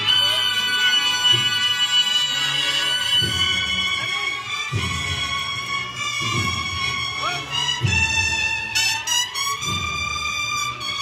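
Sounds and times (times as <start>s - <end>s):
cornet and drum band march: 0.0s - 11.0s
cornets holding long high notes: 0.0s - 11.0s.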